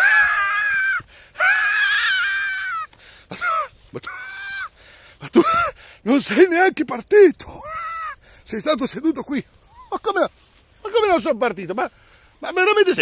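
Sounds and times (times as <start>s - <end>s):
man's high-pitched falsetto cries: 0.0s - 4.7s, 7.6s - 8.2s.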